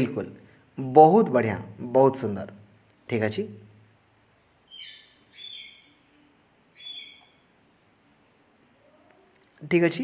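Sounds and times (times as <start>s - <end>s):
bird chirping: 2.8s - 9.5s.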